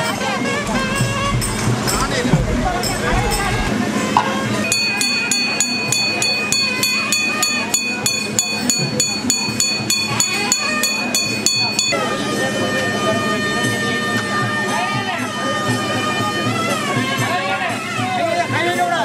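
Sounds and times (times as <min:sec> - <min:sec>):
rapid percussion strokes: 0:04.7 - 0:12.4
nadaswaram playing shrill notes: 0:04.7 - 0:14.2.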